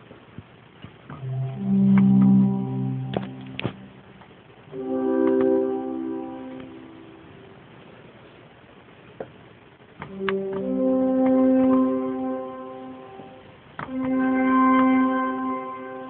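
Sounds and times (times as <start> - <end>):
pipe organ chords: 1.2 - 7.3, 10.1 - 16.0.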